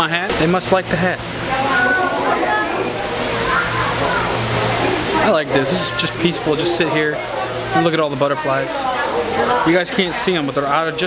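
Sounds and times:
rushing background noise: 0:00.0 - 0:11.0
faint voices: 0:00.4 - 0:11.0.

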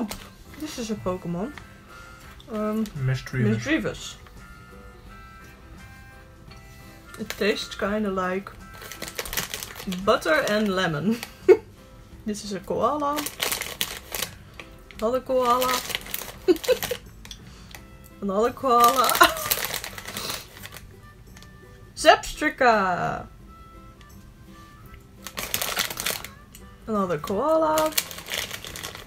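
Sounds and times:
plastic packaging rustling: 0:00.0 - 0:03.7, 0:08.6 - 0:11.6, 0:12.9 - 0:17.1, 0:18.6 - 0:21.5, 0:25.2 - 0:26.5, 0:27.2 - 0:29.0.

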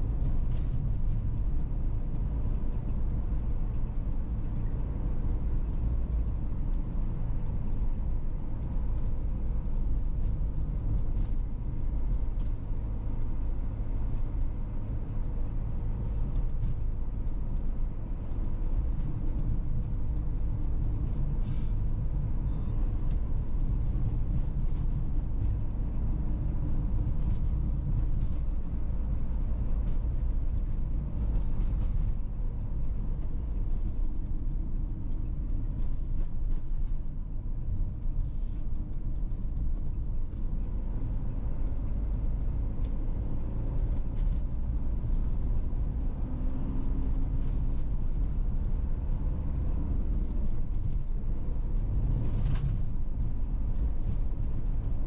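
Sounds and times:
car driving on asphalt: 0:00.0 - 0:55.0.

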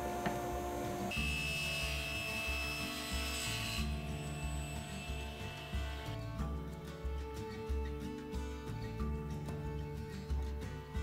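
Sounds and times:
table saw cutting wood: 0:00.0 - 0:06.4
background music: 0:00.5 - 0:11.0.

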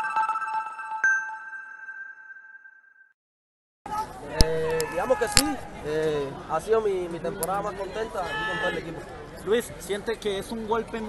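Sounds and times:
bell-like chime ringing: 0:00.0 - 0:03.1.

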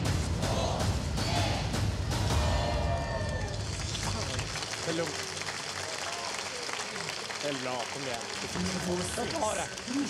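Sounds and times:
studio audience applauding: 0:03.0 - 0:10.0.

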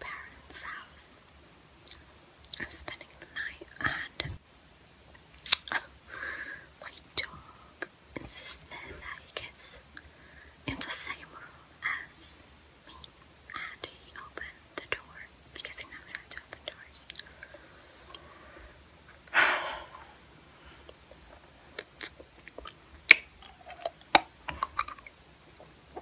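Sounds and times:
soft whispering: 0:00.0 - 0:01.2, 0:01.9 - 0:04.4, 0:06.7 - 0:18.6
wet mouth clicks: 0:05.4 - 0:05.7, 0:21.8 - 0:25.2.

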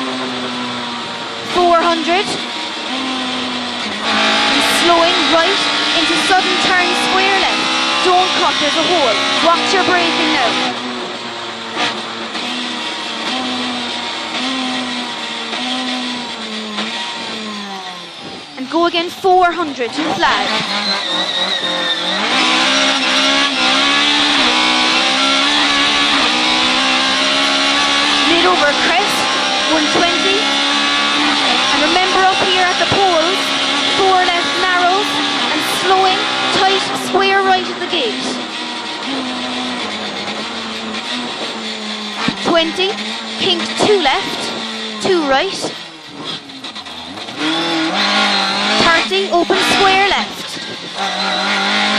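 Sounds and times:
rally car engine revving hard: 0:00.0 - 0:51.9
road and cabin noise: 0:00.0 - 0:51.9.

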